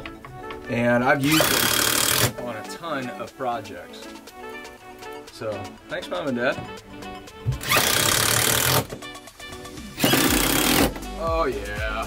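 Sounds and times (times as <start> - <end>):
background music: 0.0 - 12.0
impact driver driving screw: 1.2 - 2.4, 7.6 - 9.0, 10.0 - 11.0.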